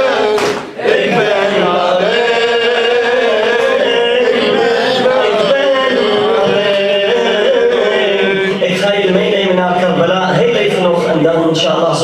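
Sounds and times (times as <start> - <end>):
man chanting into a microphone: 5.0 - 12.0.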